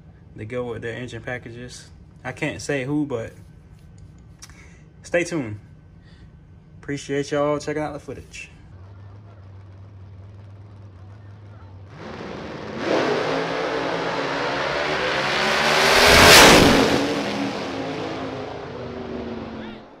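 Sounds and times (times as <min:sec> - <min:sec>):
drag racing cars accelerating: 0:08.8 - 0:20.0.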